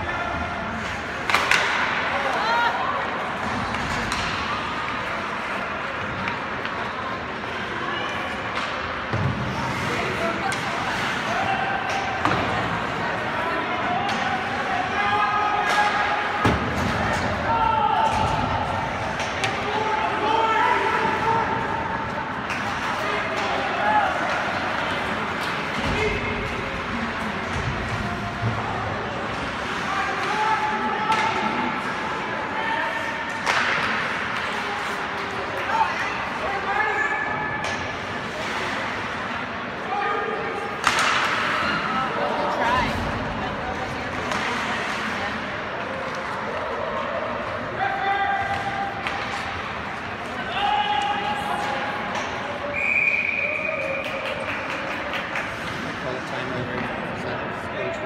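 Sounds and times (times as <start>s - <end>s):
puck and sticks knocking boards: 1.2s - 2.0s, 33.4s - 34.6s, 40.8s - 41.6s.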